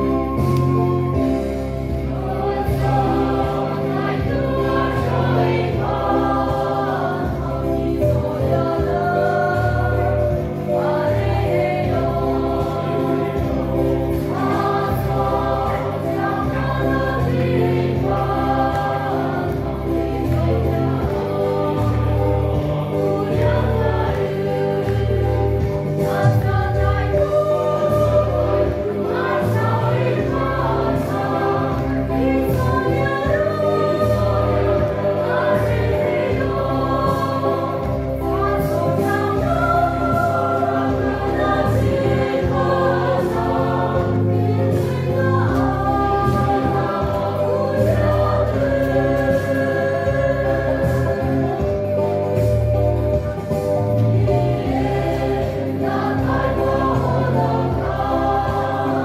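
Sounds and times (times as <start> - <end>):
mixed choir singing in harmony: 0.0 - 59.0.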